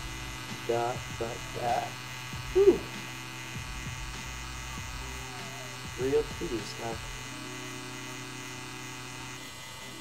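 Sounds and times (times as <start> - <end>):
tattoo machine buzzing: 0.0 - 10.0.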